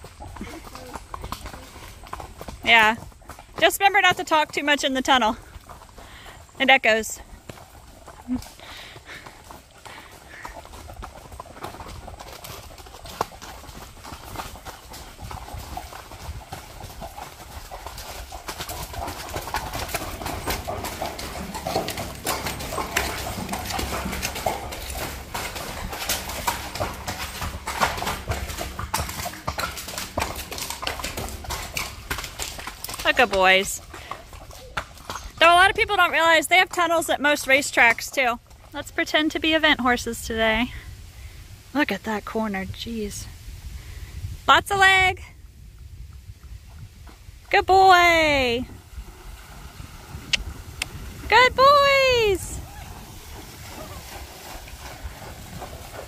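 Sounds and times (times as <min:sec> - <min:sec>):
horse hooves on gravel: 0:00.0 - 0:43.6, 0:44.5 - 0:56.0.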